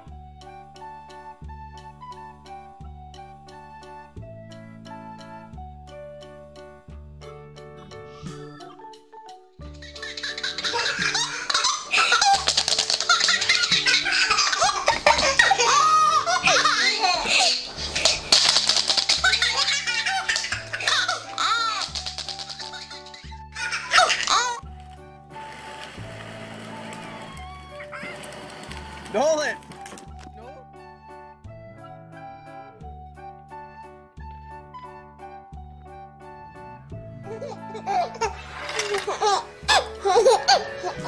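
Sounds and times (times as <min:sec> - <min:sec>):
background music: 0:00.0 - 0:41.0
baby laughing: 0:09.7 - 0:24.6, 0:27.7 - 0:28.3, 0:37.3 - 0:41.0.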